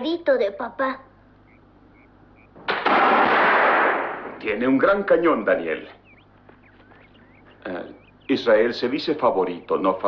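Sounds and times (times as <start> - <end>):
rifle shot: 2.6 - 4.4.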